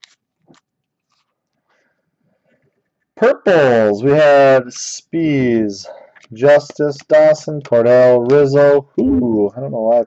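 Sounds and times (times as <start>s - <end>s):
cards clicking and rustling: 0.0s - 1.6s.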